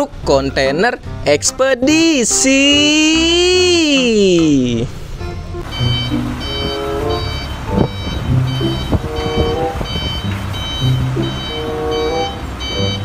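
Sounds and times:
truck reversing alarm beeping: 0:05.3 - 0:13.0.

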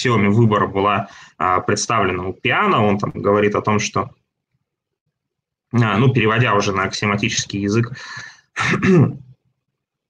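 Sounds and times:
man clearing his throat: 0:08.6 - 0:09.3.

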